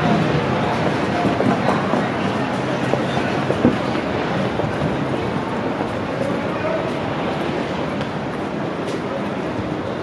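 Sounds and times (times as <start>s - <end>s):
indistinct pedestrian voices: 0.0s - 10.0s
traffic rumble: 0.0s - 10.0s.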